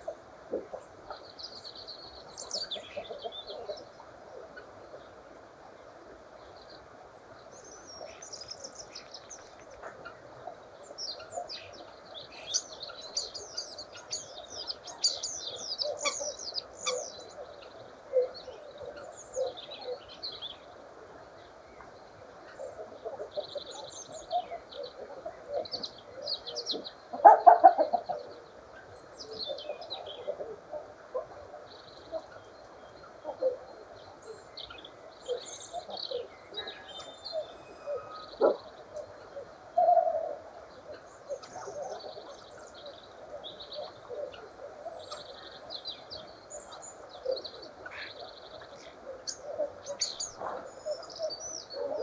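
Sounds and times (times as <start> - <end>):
starling singing: 12.5 - 17.2.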